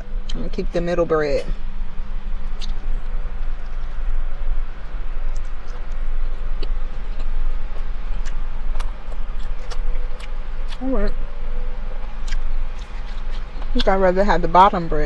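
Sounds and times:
low hum inside a car: 0:00.0 - 0:15.0
chewing and mouth clicks: 0:02.4 - 0:04.0, 0:04.8 - 0:11.2, 0:12.0 - 0:14.0.

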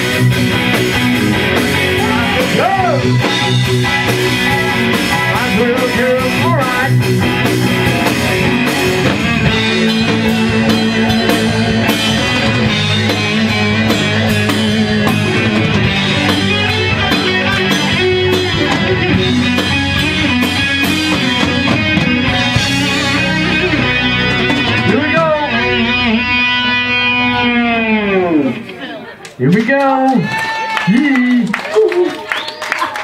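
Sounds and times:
live rock band playing: 0:00.0 - 0:29.6.

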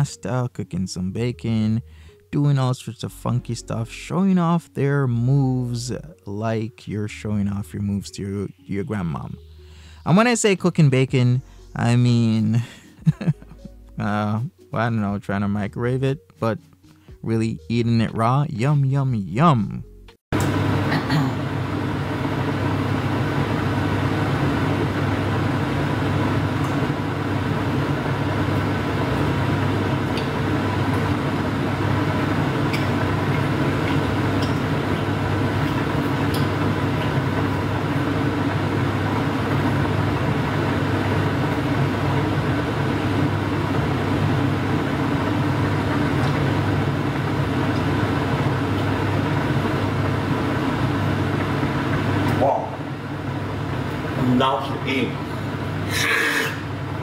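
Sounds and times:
kitchen appliance humming: 0:20.4 - 0:57.0.

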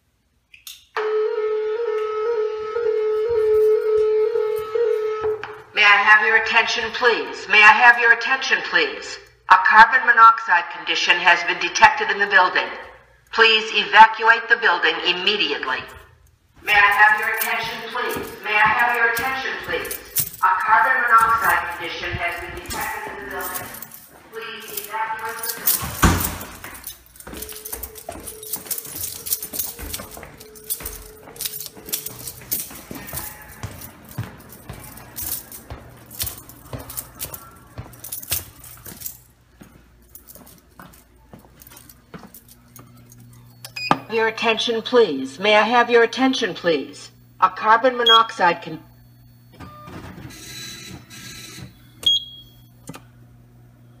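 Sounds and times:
electrical hum: 0:00.0 - 0:54.0
footsteps going down stairs: 0:16.5 - 0:42.9
clattering and jangling: 0:16.8 - 0:39.3.

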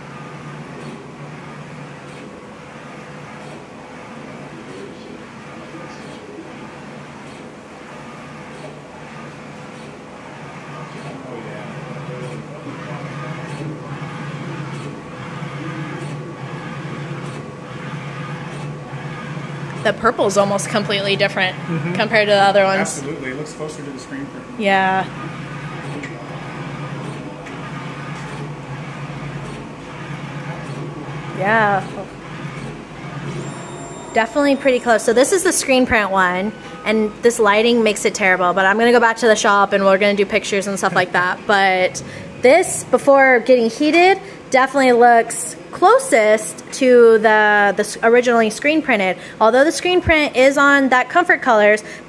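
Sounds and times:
printer mechanical hum: 0:00.0 - 0:52.0
faint high whine: 0:33.4 - 0:34.8.

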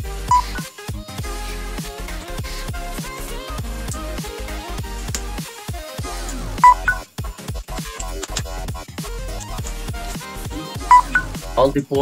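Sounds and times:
electronic music with steady beat: 0:00.0 - 0:12.0
smartphone two-note beep: 0:06.6 - 0:07.0.

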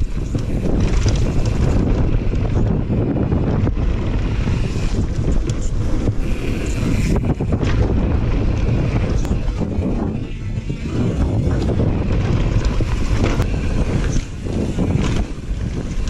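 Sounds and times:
bike knocks and rattles: 0:00.0 - 0:16.0
tyre noise on dirt: 0:00.0 - 0:16.0
wind buffeting microphone: 0:00.0 - 0:16.0.

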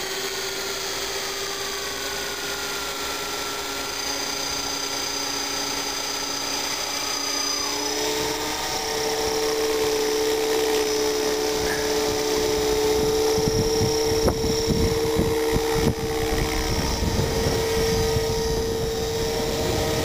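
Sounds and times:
electric motor whine: 0:00.0 - 0:20.0
helicopter rotor hum: 0:00.0 - 0:20.0
rotor wash buffeting microphone: 0:07.6 - 0:20.0.

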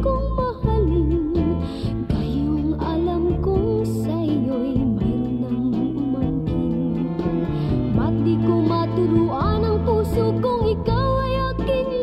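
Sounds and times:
long held bass notes: 0:00.0 - 0:12.0
woman singing pop ballad: 0:00.0 - 0:12.0.

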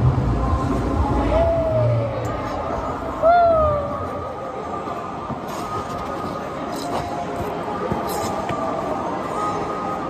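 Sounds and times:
ice-skate blades scraping ice: 0:05.4 - 0:08.6.

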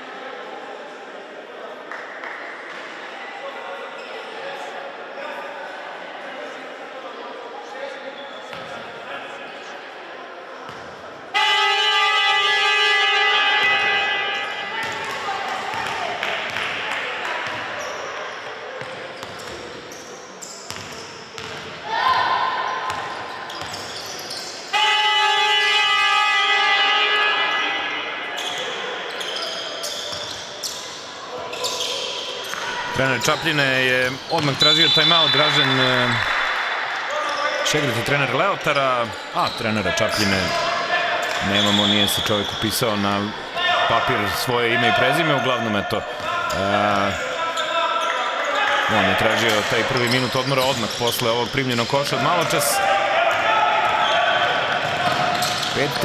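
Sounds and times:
scoreboard horn blasts: 0:11.3 - 0:14.5.

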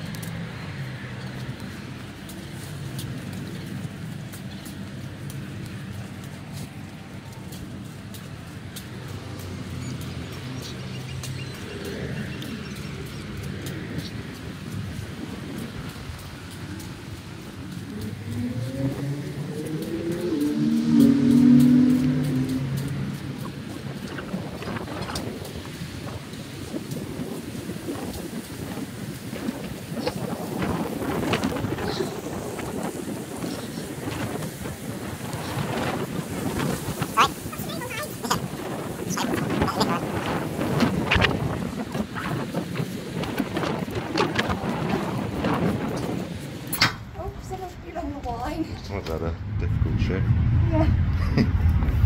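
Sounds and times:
wind rumbling on microphone: 0:00.0 - 0:52.0.

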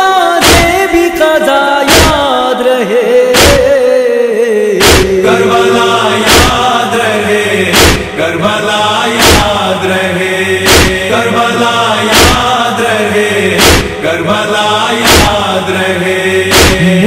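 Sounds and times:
male chorus chanting a lament: 0:00.0 - 0:17.0
chest beating: 0:04.8 - 0:08.2, 0:10.6 - 0:11.2, 0:12.0 - 0:12.6, 0:13.5 - 0:14.0, 0:15.0 - 0:15.5, 0:16.5 - 0:17.0.

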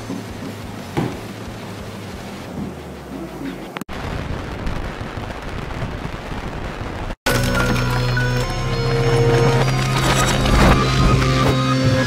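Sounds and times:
crackling and rumbling noise: 0:00.0 - 0:12.0.

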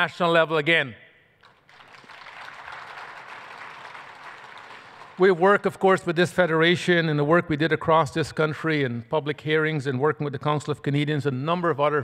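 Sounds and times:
audience applauding: 0:01.4 - 0:05.8.

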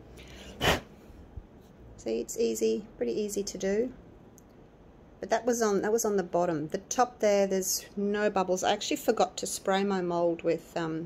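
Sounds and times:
short puff of breath: 0:00.2 - 0:01.0.

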